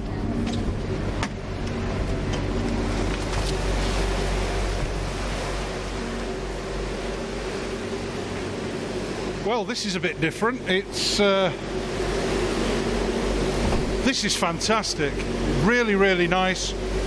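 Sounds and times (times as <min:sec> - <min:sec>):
faint steady hum tones: 0:00.0 - 0:17.0
refrigeration fan rushing: 0:00.0 - 0:17.0.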